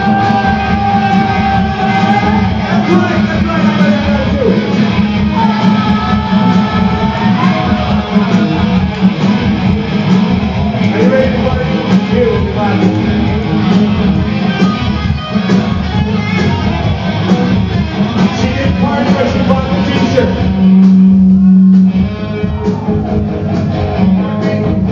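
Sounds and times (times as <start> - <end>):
live punk rock band: 0.0 - 24.9.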